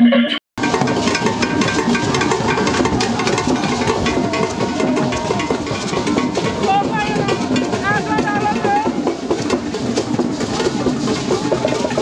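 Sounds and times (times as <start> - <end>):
hand drums ensemble: 0.6 - 12.0.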